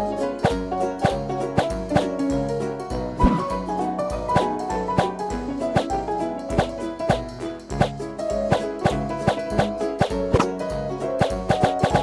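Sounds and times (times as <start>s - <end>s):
background music with drum beat: 0.4s - 12.0s.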